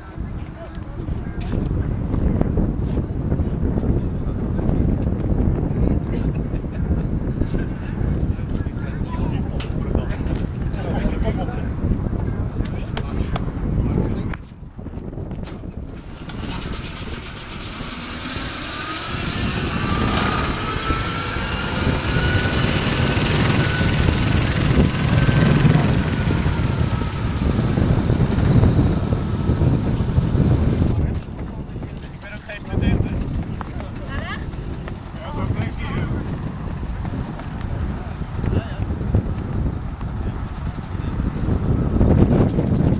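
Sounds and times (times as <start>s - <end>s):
turbine rotor whirring: 15.0s - 42.9s
faint gliding whine: 15.8s - 31.0s
voices: 16.0s - 38.9s.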